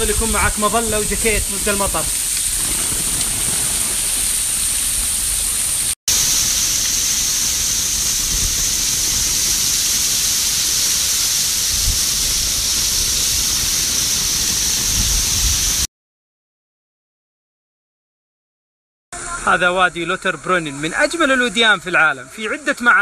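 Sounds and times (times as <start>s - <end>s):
waterfall rushing: 0.0s - 15.9s
spray falling on umbrella: 1.7s - 15.6s.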